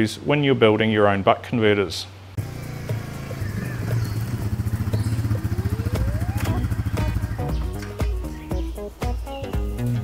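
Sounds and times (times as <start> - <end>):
quad bike engine throbbing: 2.4 - 10.0
thin rising whine: 2.6 - 8.0.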